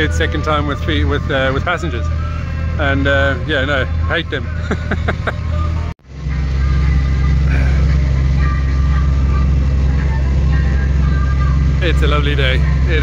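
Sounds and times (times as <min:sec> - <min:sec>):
boat engine droning: 0:00.0 - 0:13.0.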